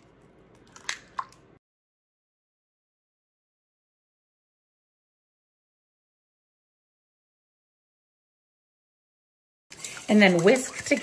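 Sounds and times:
eggshell cracking: 0.6s - 1.5s.

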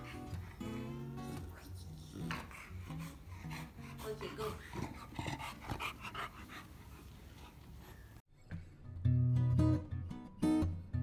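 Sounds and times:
dog vocalising: 0.0s - 7.1s.

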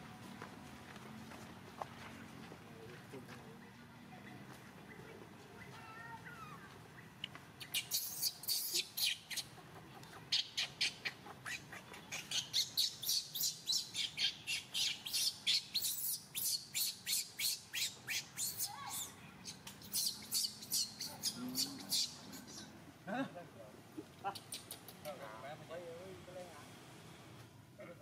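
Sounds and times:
sharp high-pitched animal calls: 7.6s - 9.5s, 10.3s - 19.2s, 19.8s - 22.7s.

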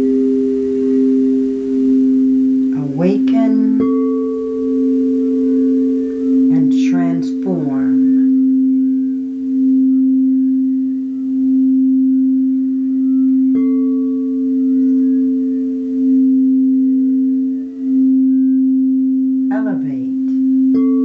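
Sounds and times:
singing bowl humming: 0.0s - 21.0s.

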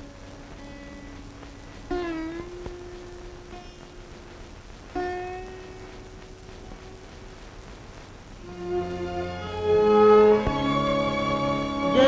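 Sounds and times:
plucked-string note: 0.0s - 7.3s, 8.4s - 12.0s.

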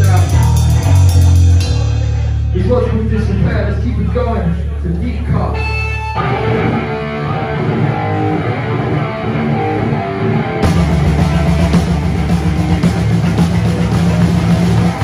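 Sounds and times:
drums and cymbals: 0.0s - 2.9s, 10.6s - 15.0s
guitar and bass: 0.0s - 15.0s.

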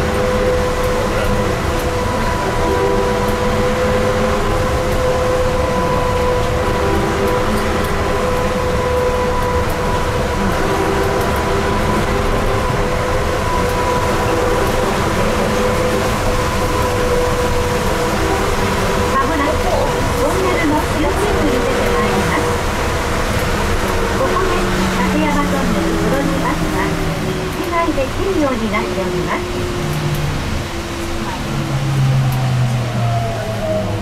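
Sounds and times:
trolleybus ride rumble: 0.0s - 34.0s.

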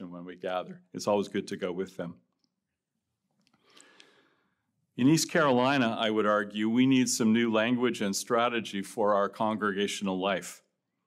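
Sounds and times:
man's faint breath drawn in: 3.6s - 4.7s.

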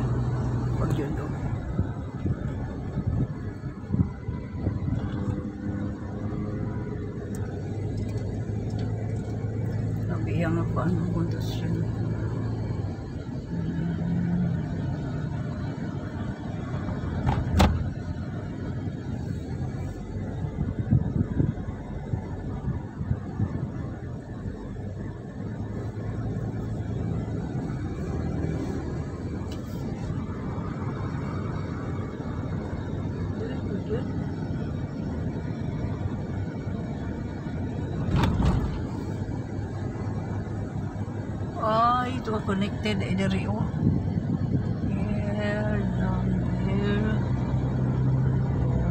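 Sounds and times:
car cabin road noise: 0.0s - 48.9s.

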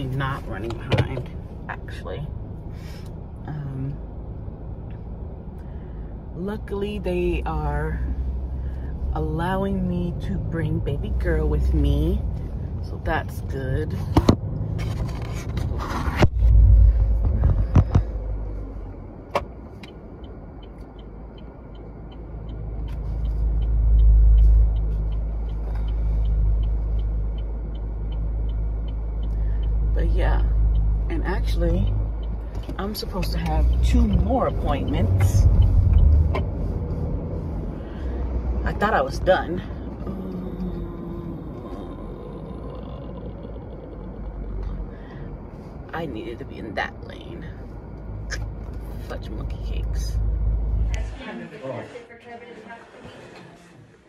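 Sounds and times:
turn signal ticking: 0.0s - 51.1s
car engine and road rumble: 0.0s - 54.0s.

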